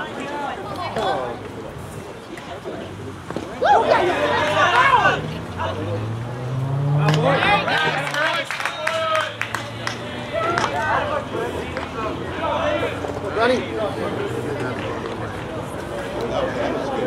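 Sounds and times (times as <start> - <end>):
people shouting: 3.5 - 6.0, 10.0 - 13.0.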